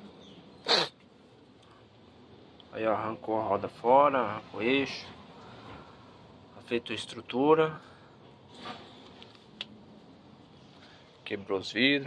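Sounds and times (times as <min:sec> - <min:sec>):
sharp sniff through the nose: 0:00.6 - 0:01.0.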